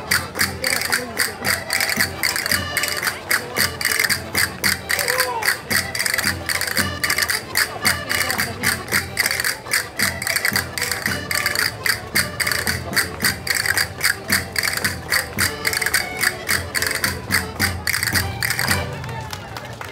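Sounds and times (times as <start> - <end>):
fast percussive beat: 0.0 - 19.0
folk dance music: 0.0 - 19.9.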